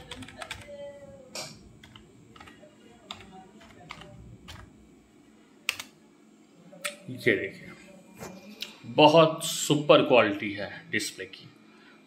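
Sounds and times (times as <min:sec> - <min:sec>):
keyboard keys clicking: 0:00.0 - 0:00.7, 0:03.1 - 0:04.6.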